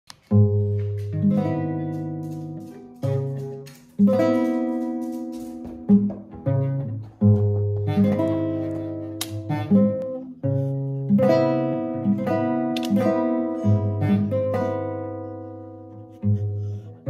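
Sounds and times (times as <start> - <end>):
classical guitar chords: 0.2 - 16.6.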